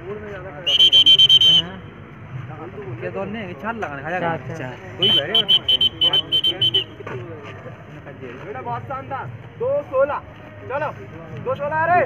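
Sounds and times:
shrill pea whistle: 0:00.6 - 0:01.7, 0:05.0 - 0:06.9
men's voices: 0:02.4 - 0:12.0.

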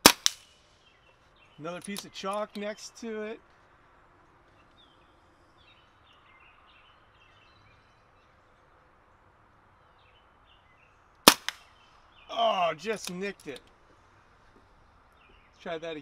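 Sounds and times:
air pistol shot: 0:00.0 - 0:00.5, 0:11.3 - 0:11.6.

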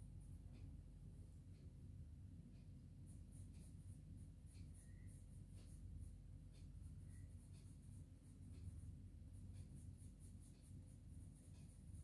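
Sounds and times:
pencil scratching on paper: 0:03.0 - 0:12.0.

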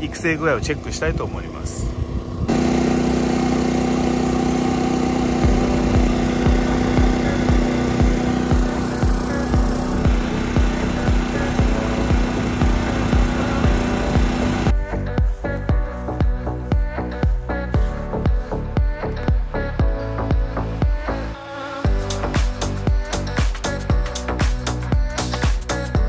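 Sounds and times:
drone propellers humming: 0:00.0 - 0:21.3
music with low beat: 0:05.1 - 0:21.2, 0:21.9 - 0:26.0.

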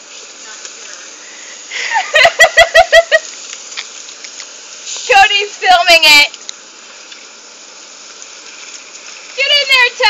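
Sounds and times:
garden hose spraying water: 0:00.0 - 0:10.0
woman laughing: 0:01.7 - 0:03.4.

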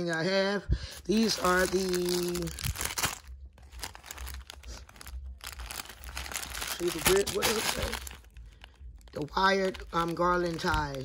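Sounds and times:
low rumble: 0:00.6 - 0:11.0
plastic packaging crinkling: 0:01.0 - 0:11.0.

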